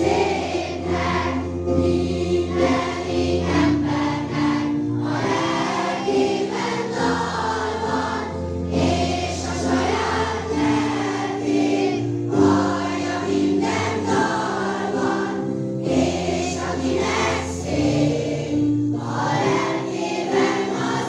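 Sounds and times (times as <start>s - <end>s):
children's choir singing: 0.0s - 21.0s.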